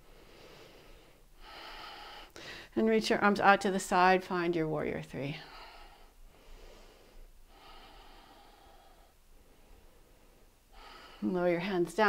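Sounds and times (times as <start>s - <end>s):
woman breathing softly: 0.0s - 2.8s, 5.4s - 11.4s.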